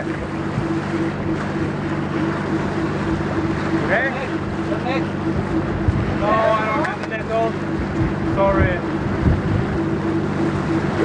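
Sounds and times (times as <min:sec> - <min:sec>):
steady low hum: 0:00.0 - 0:11.0
wind buffeting microphone: 0:00.0 - 0:11.0.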